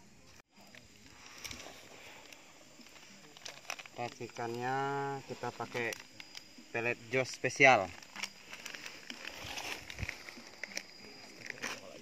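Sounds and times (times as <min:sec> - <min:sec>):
paper packet crinkling: 0:00.6 - 0:06.5, 0:07.8 - 0:12.0.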